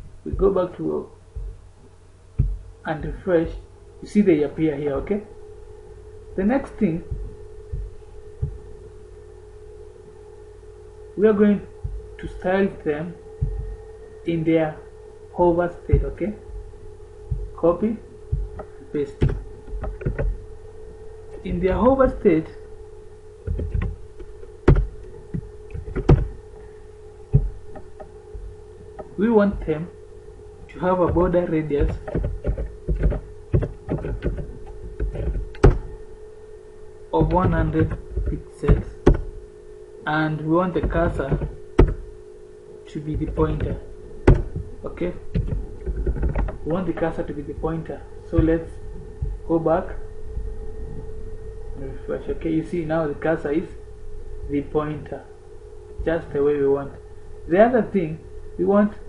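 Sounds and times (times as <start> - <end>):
soft low thumps: 0.0 - 57.6
steady low hum: 0.0 - 59.0.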